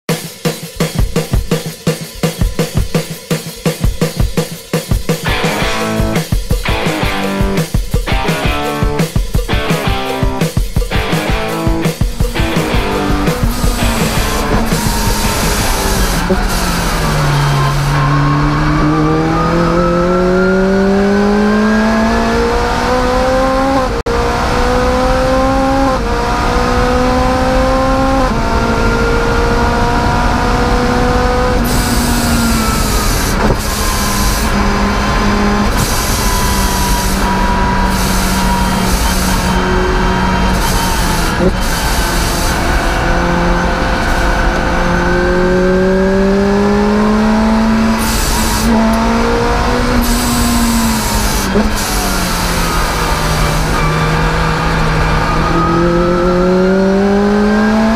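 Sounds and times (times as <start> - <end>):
car engine revving hard: 11.0 - 57.9.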